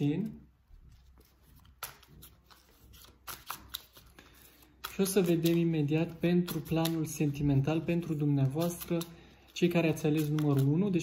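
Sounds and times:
cards being shuffled: 0.2s - 11.0s.

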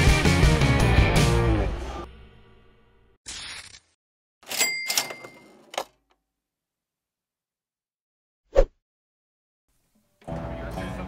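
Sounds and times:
cash register bell ding: 4.4s - 5.8s
cash register rattle: 4.4s - 6.1s
cash register click: 4.4s - 6.2s.

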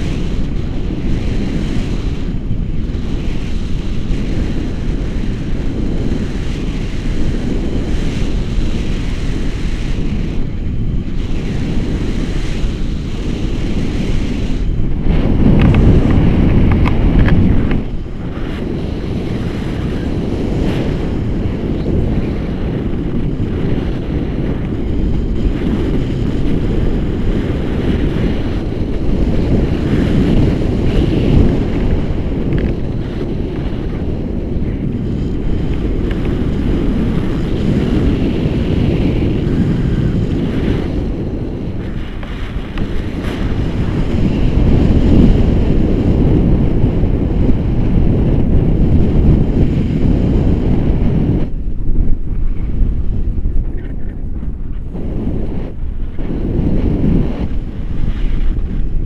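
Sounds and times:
wind rushing over microphone: 0.0s - 59.0s.

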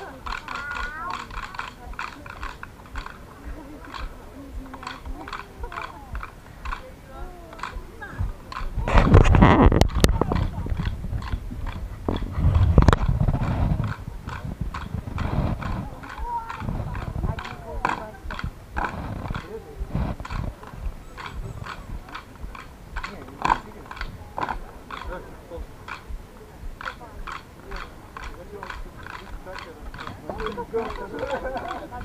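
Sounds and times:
loud voices: 0.0s - 32.0s
rhythmic sharp knocks: 0.0s - 32.0s.

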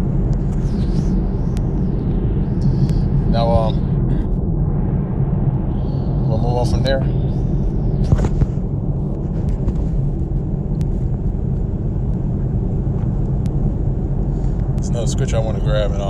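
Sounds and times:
steady low rumble: 0.0s - 16.0s.

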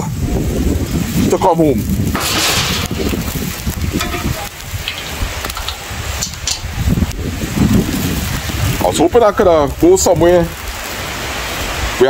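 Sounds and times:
microphone handling rumble: 0.0s - 10.6s
rain falling: 0.0s - 12.0s
wind on microphone: 0.0s - 12.0s
small clicks and rustles: 1.8s - 7.2s.

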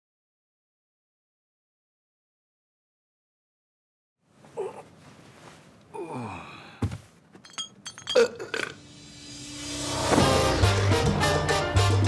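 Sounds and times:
man groaning: 4.5s - 4.9s, 5.9s - 6.9s
light ringing clinks: 7.4s - 8.4s.

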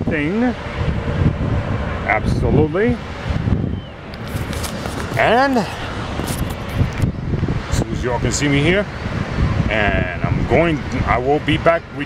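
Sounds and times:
wind buffeting microphone: 0.0s - 12.0s
faint crackles: 4.1s - 7.1s.

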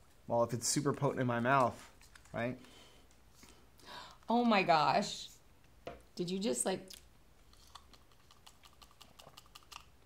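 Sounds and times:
mouth and lip smacks: 6.9s - 10.0s.

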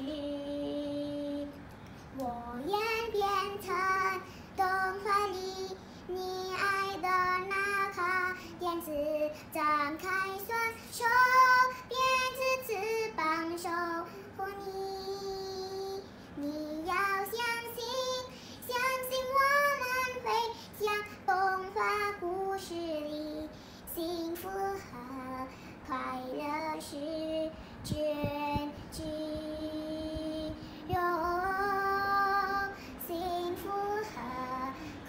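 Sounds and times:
girl singing pop ballad: 0.0s - 35.0s.

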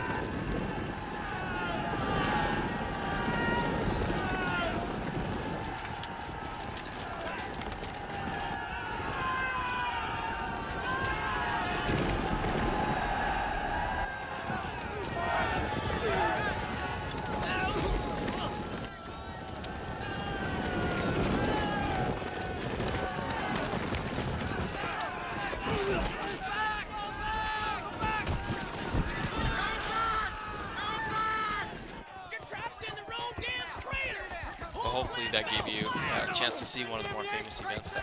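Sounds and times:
dense noisy battle din: 0.0s - 38.0s
soldiers shouting: 0.0s - 38.0s.

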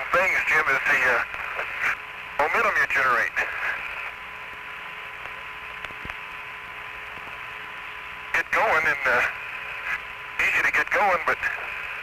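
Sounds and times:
radio static hiss: 0.0s - 12.0s.

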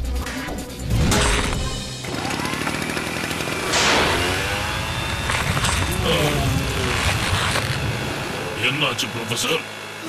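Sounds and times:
mechanical rattle with rising whine: 1.9s - 10.0s.

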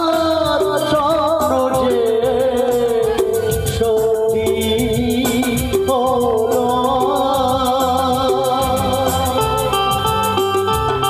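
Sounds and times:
bass line: 0.0s - 11.0s
drum kit beat: 0.0s - 11.0s.

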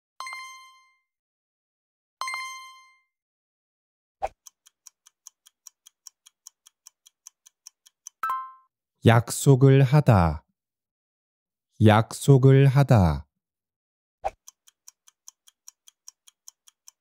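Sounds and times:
fast clock-like ticking: 4.3s - 8.2s, 14.3s - 17.0s
bright chime dings: 8.2s - 8.7s.

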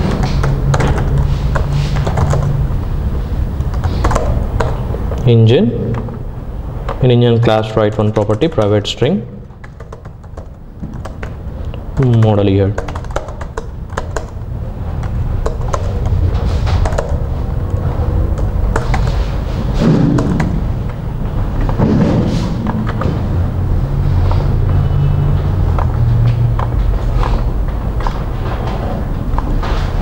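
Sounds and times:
keyboard and mouse clicks: 0.0s - 2.6s, 3.6s - 6.2s, 7.6s - 21.8s, 22.6s - 23.2s, 25.5s - 30.0s
low room hum: 0.0s - 30.0s.

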